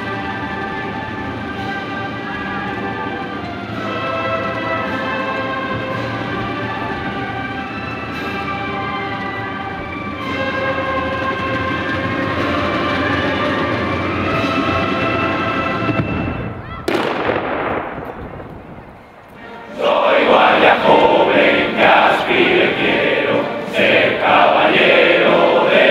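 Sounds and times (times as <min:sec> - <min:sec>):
band playing held chords: 0:00.0 - 0:25.9
rifle volley crack: 0:16.8 - 0:19.5.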